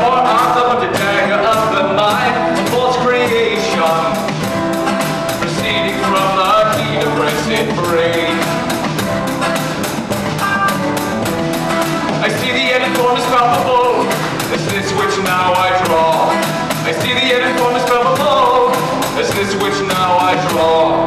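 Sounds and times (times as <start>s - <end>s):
man singing: 0.0s - 4.6s, 5.3s - 9.0s, 12.1s - 21.0s
fast drum beat: 0.0s - 21.0s
rock band playing: 0.0s - 21.0s.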